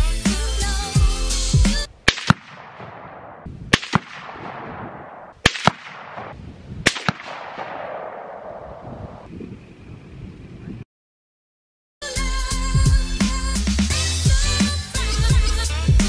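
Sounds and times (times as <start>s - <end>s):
rifle shots: 2.0s - 9.2s
target hit crack with echo: 2.1s - 8.8s.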